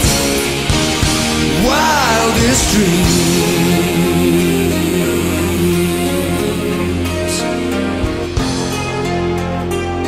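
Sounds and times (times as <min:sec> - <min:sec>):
hard rock guitar music: 0:00.0 - 0:10.0.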